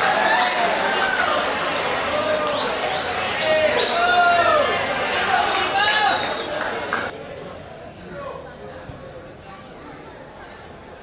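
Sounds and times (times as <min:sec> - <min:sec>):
players calling and shouting: 0:00.0 - 0:07.2.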